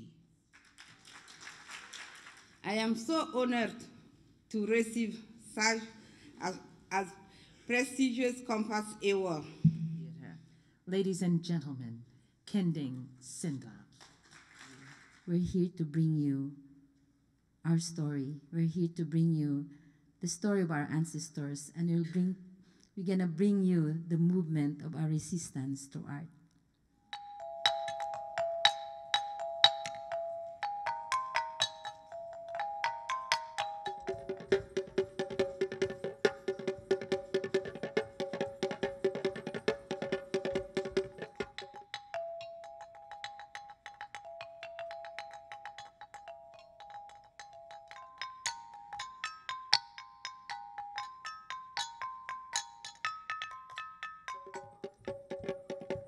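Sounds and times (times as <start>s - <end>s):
tuned metal percussion ringing: 27.1s - 56.0s
xylophone melody: 27.1s - 56.0s.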